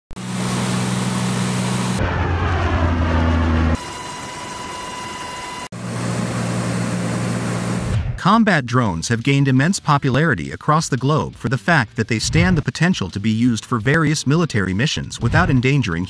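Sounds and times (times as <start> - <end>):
aircraft engine drone: 0.2 - 8.0
high steady whine: 0.2 - 8.2.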